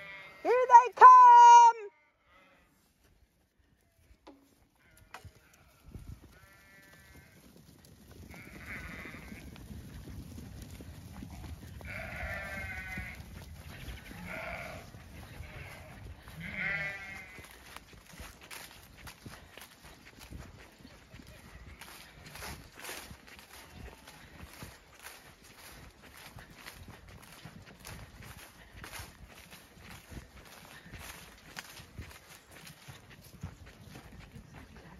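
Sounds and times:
sheep bleating: 0:00.0 - 0:02.8, 0:04.8 - 0:07.4, 0:08.3 - 0:09.5, 0:11.7 - 0:18.7, 0:21.2 - 0:24.2
hooves trampling on grass: 0:02.7 - 0:34.9.

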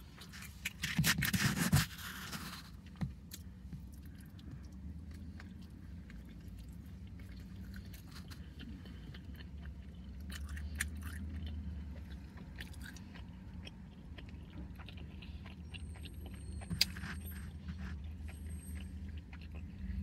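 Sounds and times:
low steady hum: 0:00.0 - 0:20.0
chewing with wet mouth clicks: 0:02.8 - 0:20.0.

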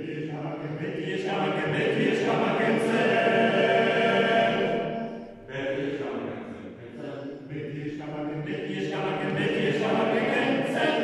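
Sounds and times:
male choir singing: 0:00.0 - 0:06.3, 0:06.9 - 0:11.0.

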